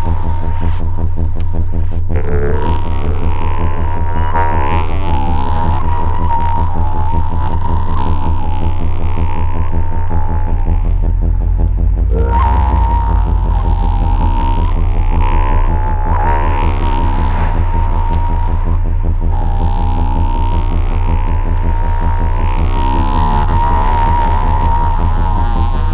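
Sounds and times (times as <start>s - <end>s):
synthesizer drone: 0.0s - 25.9s.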